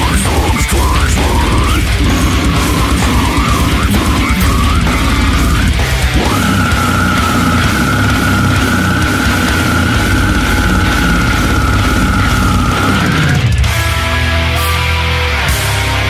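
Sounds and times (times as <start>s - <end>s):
distorted down-tuned guitars: 0.0s - 16.0s
drums: 0.0s - 16.0s.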